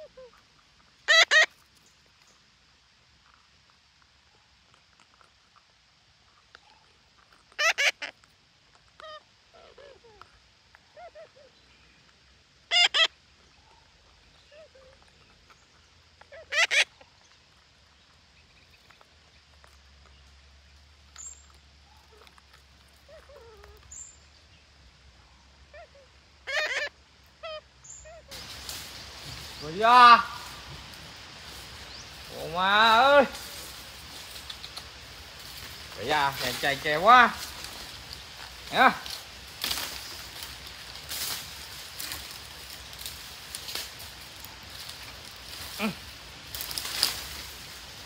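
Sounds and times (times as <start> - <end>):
parakeets squawking: 1.1 - 1.5, 7.6 - 8.1, 12.7 - 13.1, 16.3 - 16.9, 26.5 - 28.5.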